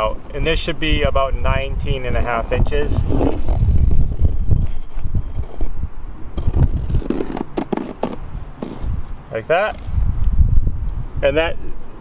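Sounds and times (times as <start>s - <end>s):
wind rumble on microphone: 0.0s - 12.0s
pencil scratching across plywood: 2.1s - 5.7s, 6.4s - 10.0s.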